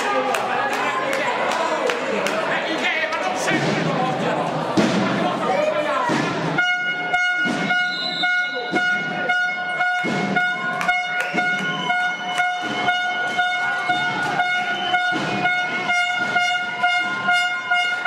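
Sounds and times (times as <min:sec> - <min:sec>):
high-pitched horn-like tone: 0:06.6 - 0:18.0.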